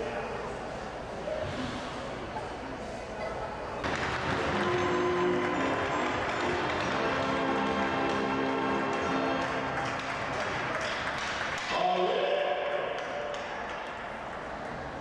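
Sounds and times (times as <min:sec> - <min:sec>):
crowd voices: 0:00.0 - 0:15.0.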